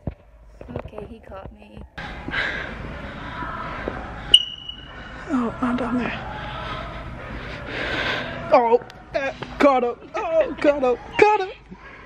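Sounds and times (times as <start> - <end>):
steady background noise: 0.0 - 12.0
high-pitched beep: 4.3 - 4.9.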